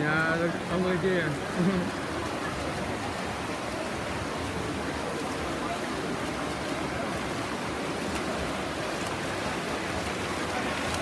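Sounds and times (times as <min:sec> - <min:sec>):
swimmers splashing in pool: 0:00.0 - 0:11.0.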